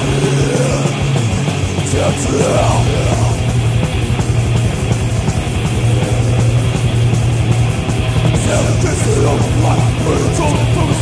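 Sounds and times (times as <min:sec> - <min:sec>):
metal band playing instrumental: 0:00.0 - 0:11.0.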